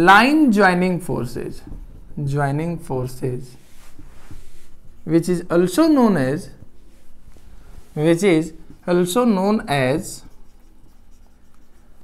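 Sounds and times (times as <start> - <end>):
marker pen writing on whiteboard: 9.9 - 12.0.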